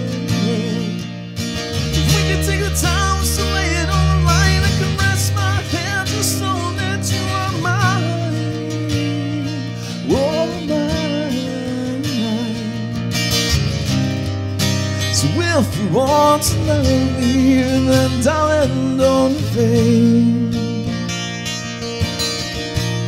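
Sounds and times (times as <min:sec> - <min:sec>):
acoustic-electric guitar playing: 0:00.0 - 0:23.0.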